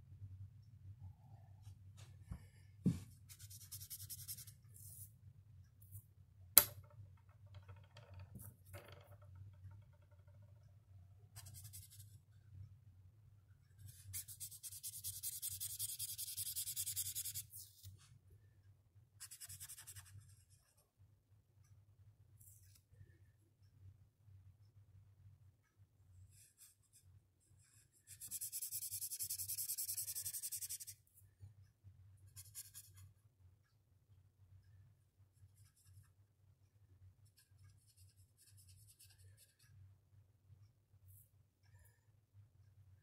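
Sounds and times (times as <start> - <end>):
marker scratching on paper: 3.3 - 5.1, 13.8 - 17.9, 19.2 - 20.5, 27.7 - 31.0, 32.4 - 33.0.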